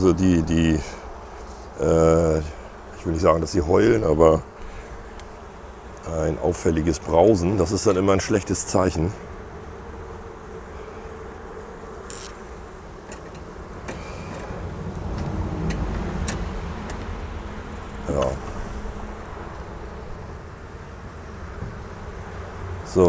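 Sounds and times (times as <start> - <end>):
honeybees humming: 0.0 - 23.0.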